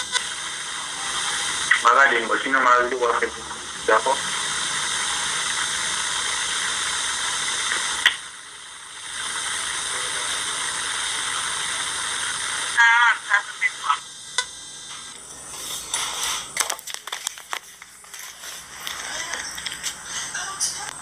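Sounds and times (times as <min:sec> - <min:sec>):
steady hiss: 0:00.0 - 0:21.0.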